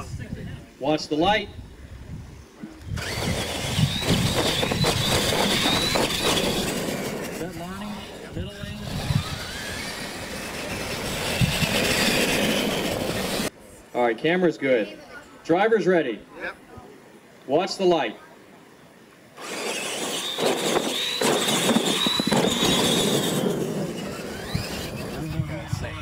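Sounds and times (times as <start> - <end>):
electric motors whining: 2.6 - 13.5, 19.4 - 26.0
tyres churning dirt: 2.6 - 13.6, 19.4 - 26.0
voices: 6.4 - 18.8, 23.4 - 26.0.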